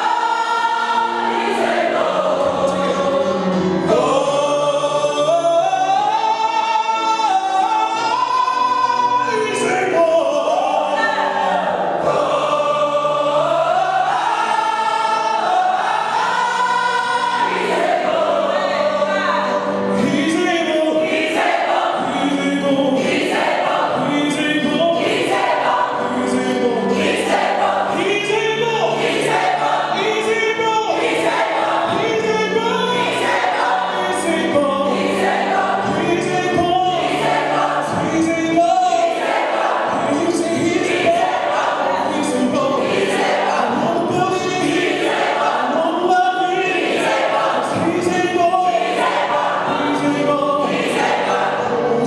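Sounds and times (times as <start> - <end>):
gospel choir singing: 0.0 - 52.0.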